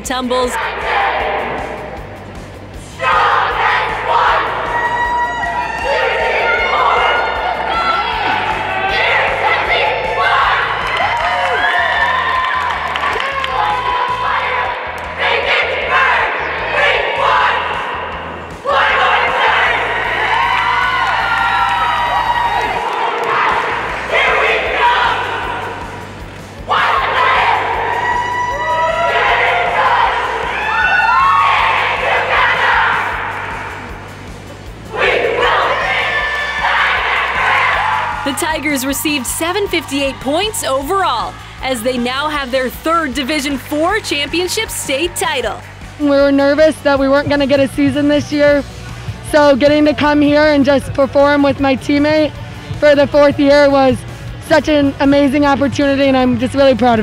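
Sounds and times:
background music: 0.0 - 57.0
girls shouting cheers in unison: 3.0 - 17.8, 18.6 - 25.6, 26.7 - 33.6, 34.9 - 42.0
onlookers cheering: 3.1 - 14.9, 18.7 - 25.8, 26.7 - 33.6, 35.0 - 42.3.

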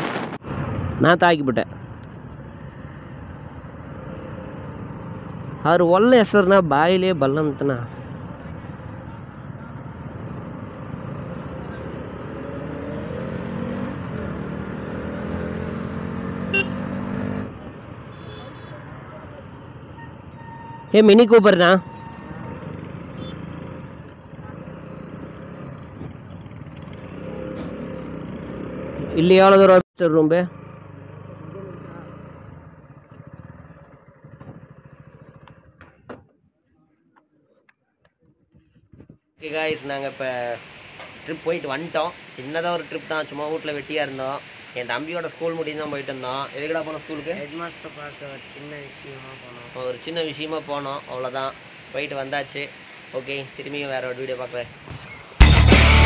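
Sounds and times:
traffic noise: 0.0 - 56.0
motorcycle engine accelerating: 8.2 - 18.0, 22.2 - 29.6, 30.4 - 36.3.

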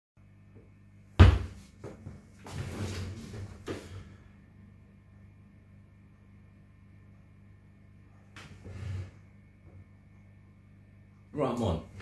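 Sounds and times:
faint steady hum: 0.2 - 12.0
heavy thump: 1.2 - 1.6.

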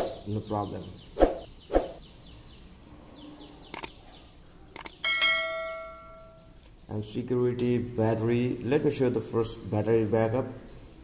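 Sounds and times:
sharp clicks: 3.7 - 4.0, 4.7 - 5.0.

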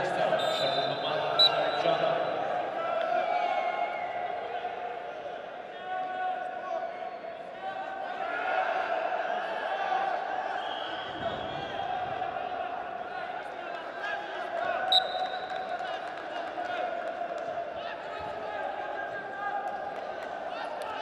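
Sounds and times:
voices calling out in echoing hall: 0.0 - 21.0.

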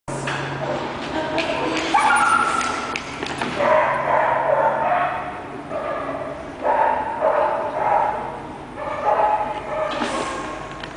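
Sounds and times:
dog barking and yipping: 1.9 - 2.8.

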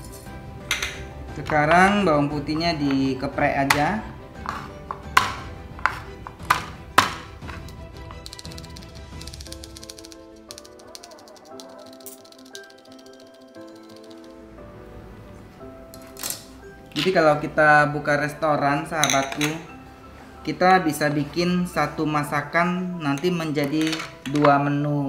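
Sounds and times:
background music: 0.0 - 25.0
knife chopping on cutting board: 3.7 - 7.7
knife smacking garlic: 4.5 - 11.7.

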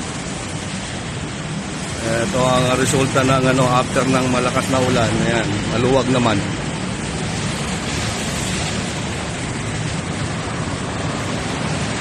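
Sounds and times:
road traffic hiss and rumble: 0.0 - 12.0.

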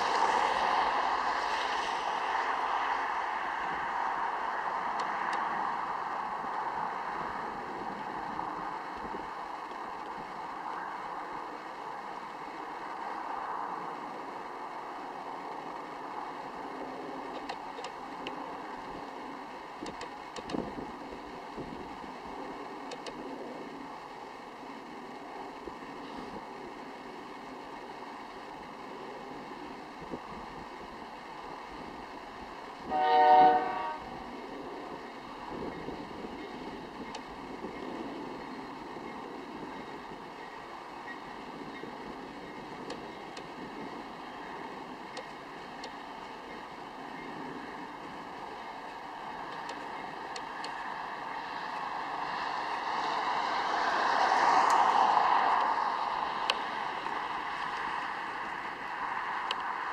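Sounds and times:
distant freight train rumbling: 0.0 - 59.9
locomotive horn blast: 32.8 - 34.3.

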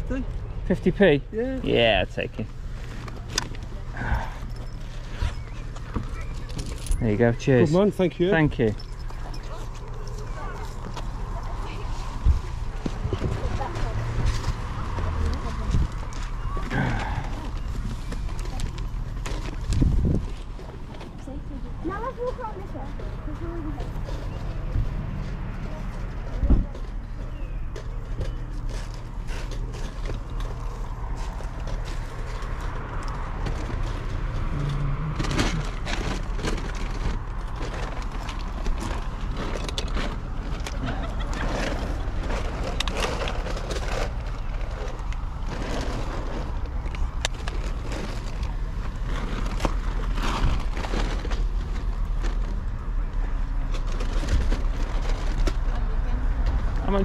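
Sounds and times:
steady low rumble: 9.2 - 57.0
plastic toys clicking and rustling: 35.1 - 57.0.

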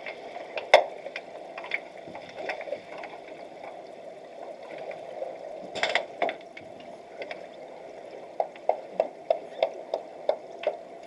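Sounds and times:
sharp underwater clicks and knocks: 0.0 - 3.2, 5.6 - 7.5, 8.3 - 11.0
muffled rush of water: 0.0 - 11.0.

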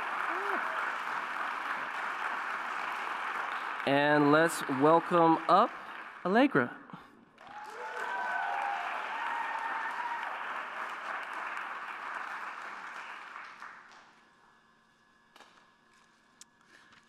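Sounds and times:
audience applauding: 0.0 - 6.7, 7.4 - 14.3.

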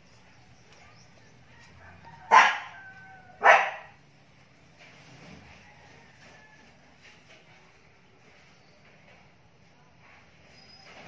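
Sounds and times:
dog barking: 2.2 - 4.0.

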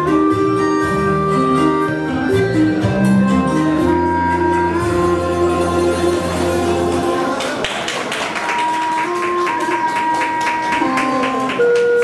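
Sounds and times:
bamboo flute playing: 0.0 - 6.4, 8.4 - 12.0
plucked backing track: 0.0 - 7.3, 8.9 - 12.0.

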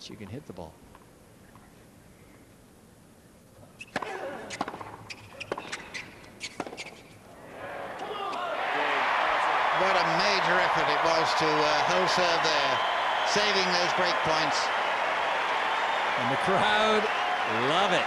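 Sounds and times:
racket hitting tennis ball: 3.8 - 7.1
crowd applause and cheering: 7.4 - 18.0.

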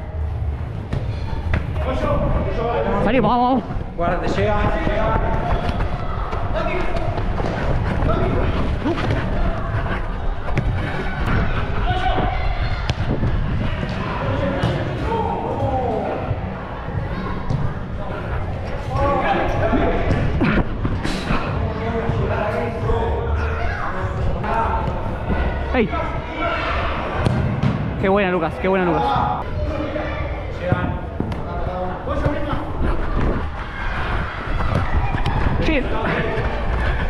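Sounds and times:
running footsteps: 3.6 - 14.2
players shouting: 23.3 - 27.5.

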